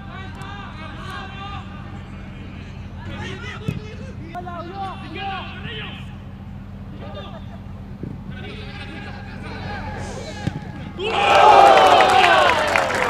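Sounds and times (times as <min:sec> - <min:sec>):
ball thud: 0:03.6 - 0:03.9, 0:10.4 - 0:11.0
players shouting: 0:08.4 - 0:13.0
crowd yelling in celebration: 0:09.7 - 0:13.0.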